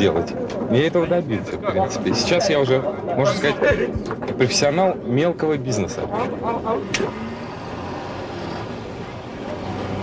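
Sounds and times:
motor vehicle traffic hum: 2.9s - 10.0s.

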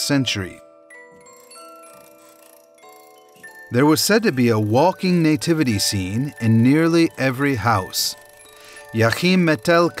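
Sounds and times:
chime notes ringing: 0.4s - 10.0s.

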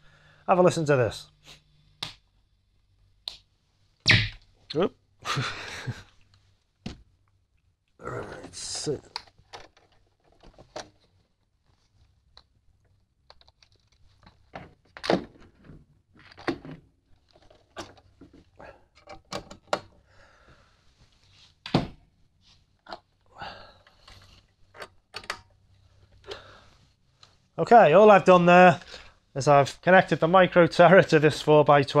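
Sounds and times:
cables and jack plugs handled: 9.0s - 20.0s.

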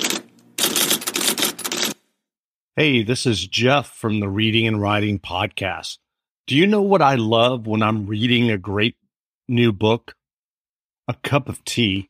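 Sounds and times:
rapid clatter of clicks: 0.0s - 2.0s.

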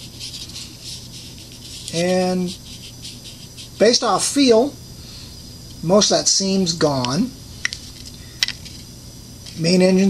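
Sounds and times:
fingertip rubbing plastic: 0.0s - 3.9s.

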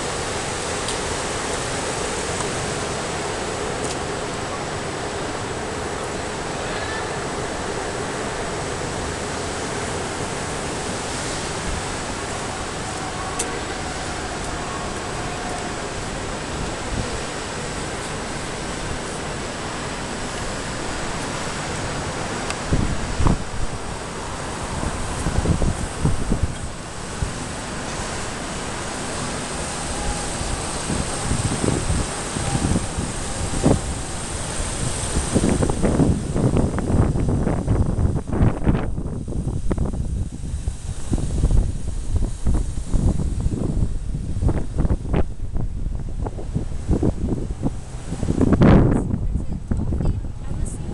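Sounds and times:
wind on microphone: 0.0s - 50.9s.

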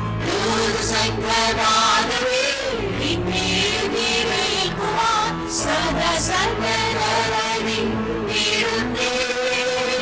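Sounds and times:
group singing worship song: 0.0s - 10.0s.

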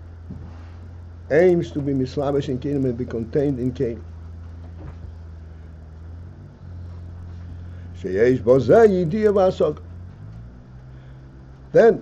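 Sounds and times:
low room noise hum: 0.0s - 12.0s.

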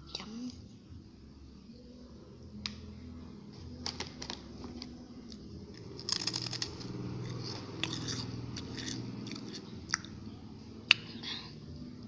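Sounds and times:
chips crunching and chewing: 5.8s - 10.1s.

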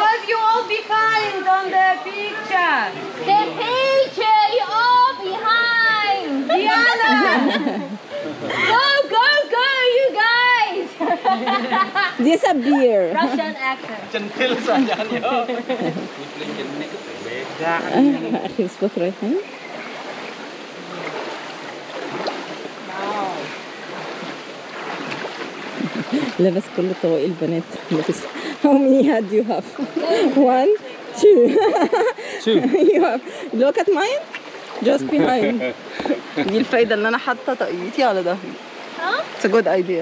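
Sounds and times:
group of people chattering: 0.0s - 20.0s, 25.7s - 40.0s.

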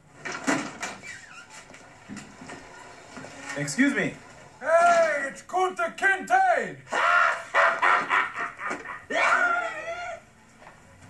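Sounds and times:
man laughing loudly: 6.9s - 9.9s.

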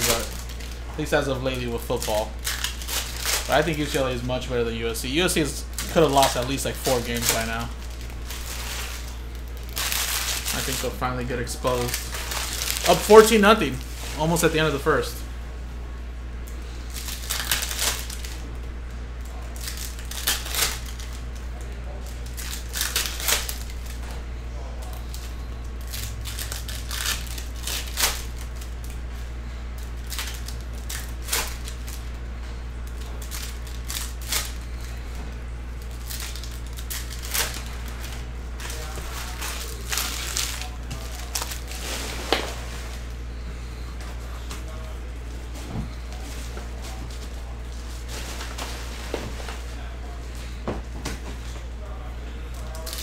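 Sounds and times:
wrappers crinkling: 0.0s - 15.2s, 16.6s - 24.1s, 24.7s - 29.0s, 29.8s - 50.2s, 51.8s - 53.0s
steady low hum: 0.0s - 53.0s.

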